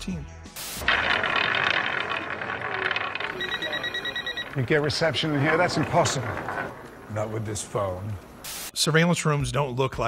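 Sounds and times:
roulette ball rattling on wheel: 0.8s - 8.4s.

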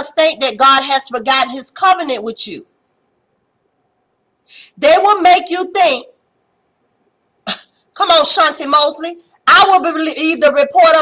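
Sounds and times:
woman speaking: 0.0s - 2.7s, 4.7s - 6.2s, 7.5s - 11.0s.

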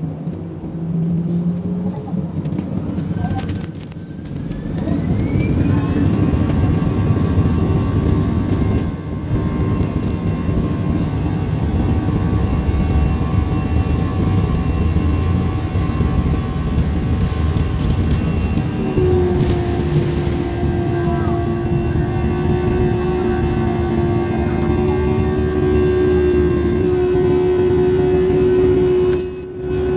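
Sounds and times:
jet engines spooling up: 0.0s - 29.9s
steady hum: 4.4s - 29.9s.

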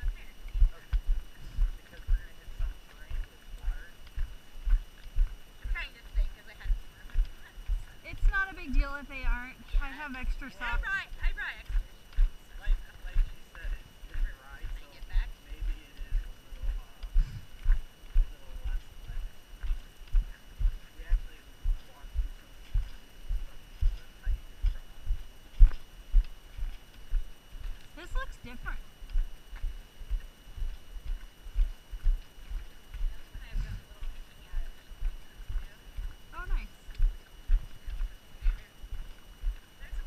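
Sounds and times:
footsteps on gravel: 0.0s - 40.0s.

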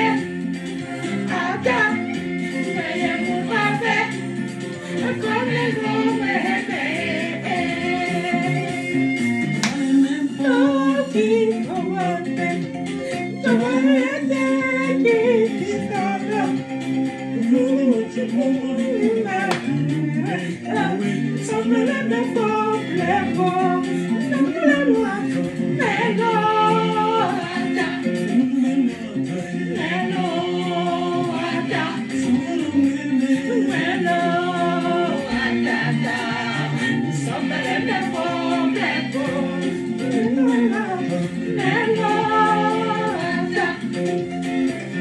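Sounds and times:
woman singing: 0.0s - 0.4s, 1.2s - 4.3s, 4.9s - 8.9s, 9.6s - 16.6s, 17.4s - 44.3s
instrumental backing: 0.0s - 45.0s.

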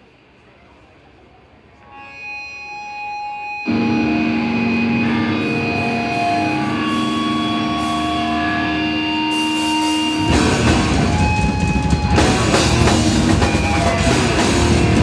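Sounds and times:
electric guitar feedback tones: 1.8s - 15.0s
distorted guitars and bass chords: 2.0s - 15.0s.

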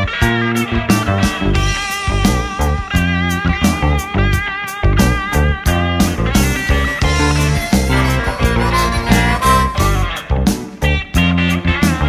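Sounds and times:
electric blues band playing: 0.0s - 12.0s.

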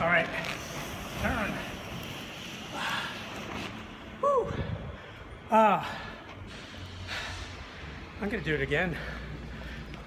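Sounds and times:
man exhaling breathily: 4.5s - 8.0s.

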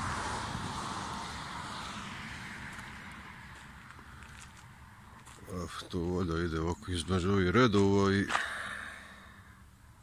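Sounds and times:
road vehicle passing: 0.0s - 10.0s.

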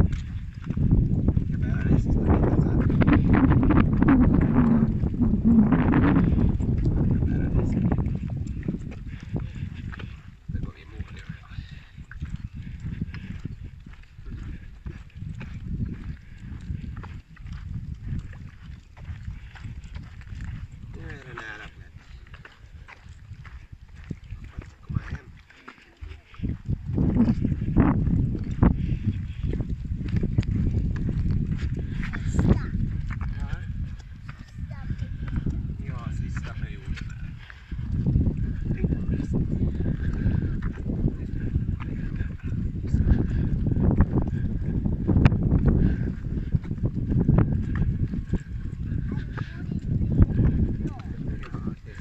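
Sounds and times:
footsteps on asphalt: 0.0s - 52.0s
low microphone rumble: 0.0s - 52.0s
pushchair wheels rolling on asphalt: 0.0s - 52.0s.

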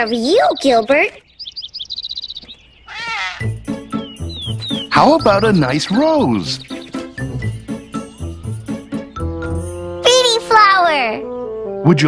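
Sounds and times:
cartoon bird twittering: 0.0s - 9.3s.

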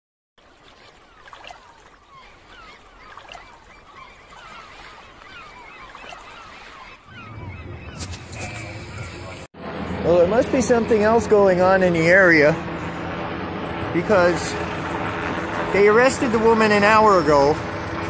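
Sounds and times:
ocean surf: 0.4s - 8.0s
seagulls calling: 0.4s - 9.5s
low hum: 7.0s - 16.4s.

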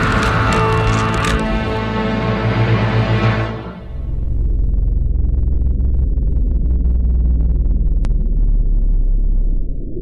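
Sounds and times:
loud low rumble: 3.8s - 10.0s.

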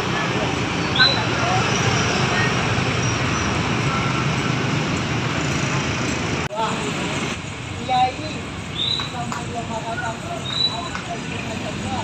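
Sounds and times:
steady traffic noise: 0.0s - 12.0s.

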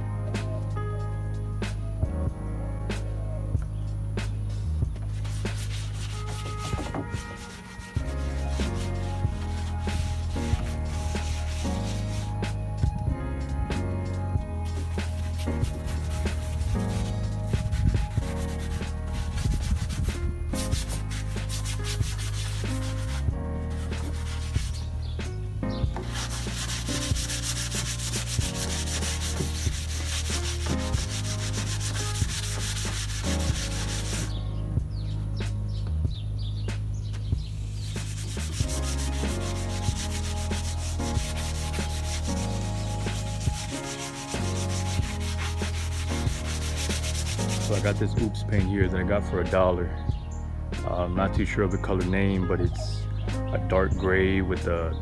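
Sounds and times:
music with stepping bass line: 0.0s - 49.2s
sanding pad rubbing wood: 5.2s - 12.6s, 14.6s - 24.9s, 25.9s - 34.4s, 37.8s - 48.4s.

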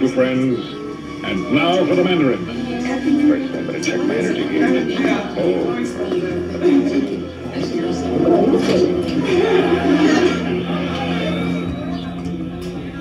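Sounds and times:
background music: 0.0s - 13.0s.

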